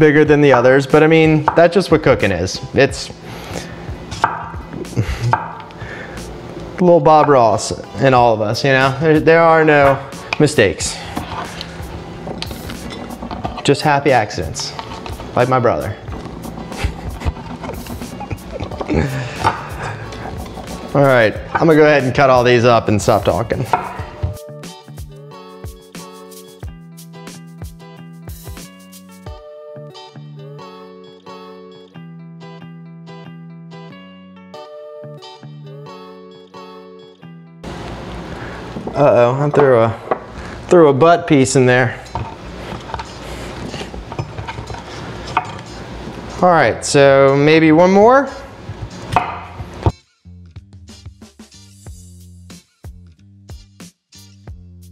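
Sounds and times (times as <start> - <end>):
background music: 0.0 - 54.9
knife chopping on wooden board: 4.2 - 4.6, 23.6 - 24.4, 49.1 - 49.9.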